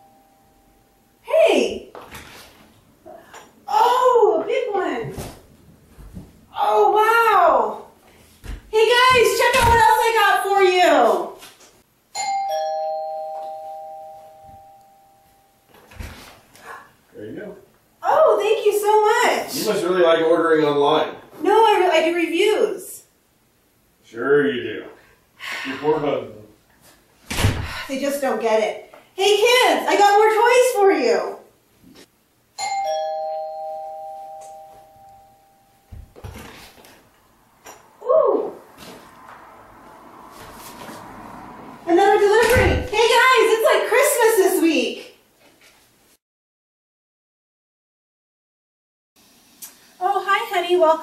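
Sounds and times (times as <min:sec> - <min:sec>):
two-tone doorbell chime: 0:00.0 - 0:01.1, 0:12.1 - 0:15.7, 0:32.6 - 0:36.1.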